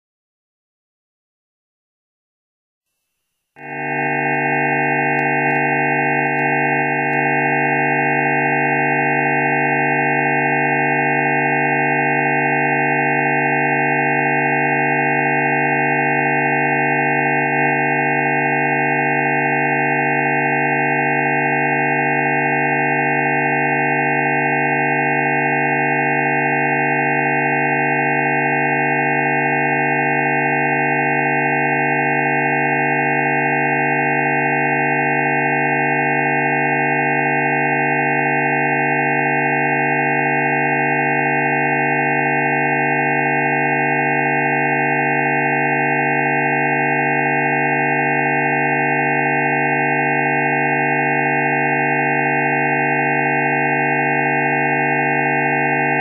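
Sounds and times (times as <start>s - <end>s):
steady sine tone chord: 3.6s - 56.0s.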